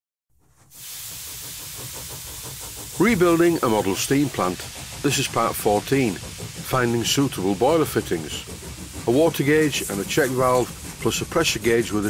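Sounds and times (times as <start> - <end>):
steam hissing: 0.4 - 12.0.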